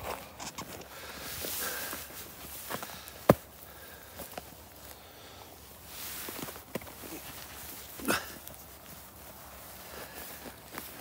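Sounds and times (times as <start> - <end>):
boots walking on crusted snow: 0.0 - 11.0.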